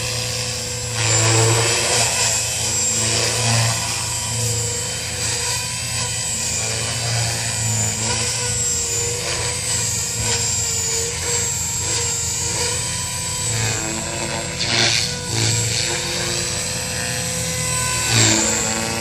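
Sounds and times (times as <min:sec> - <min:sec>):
model helicopter high-pitched whine: 0:00.0 - 0:19.0
rotor drone: 0:00.0 - 0:19.0.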